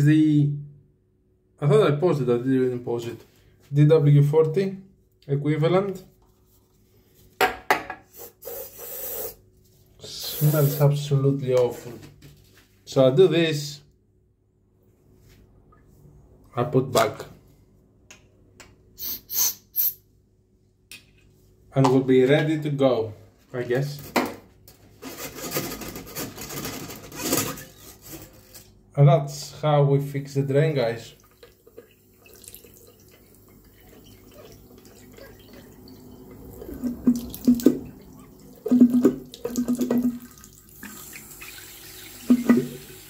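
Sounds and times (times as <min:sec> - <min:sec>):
aerosol spray hissing: 0:08.2 - 0:09.4, 0:10.2 - 0:10.9, 0:19.0 - 0:20.0
drain snake scraping metal drain: 0:25.0 - 0:28.7.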